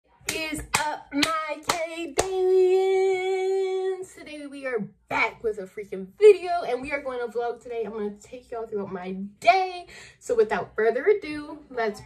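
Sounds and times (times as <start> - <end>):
sharp hand claps: 0.3 - 2.4.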